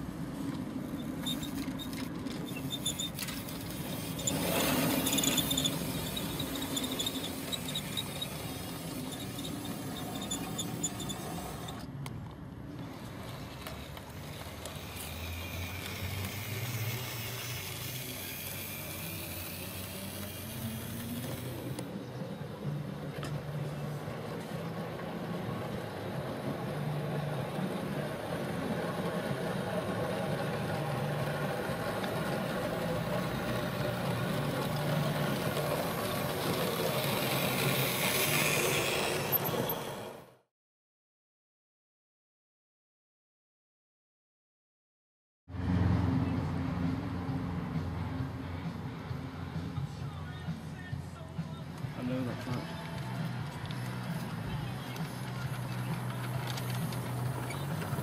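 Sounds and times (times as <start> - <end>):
model train motor hum and wheel rumble: 0.0 - 40.4, 51.7 - 58.0.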